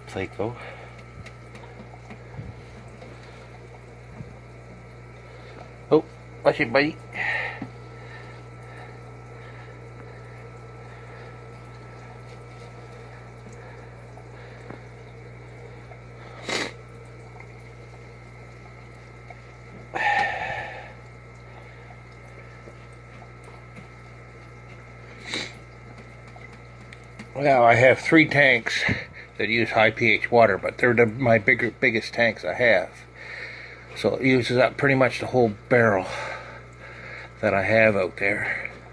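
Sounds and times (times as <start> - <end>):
low hum: 0.0 - 29.4
water draining through siphon: 0.0 - 38.9.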